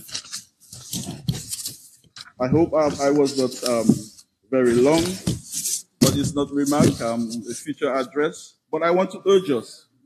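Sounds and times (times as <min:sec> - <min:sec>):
paper rustling and crinkling: 0:00.0 - 0:07.6.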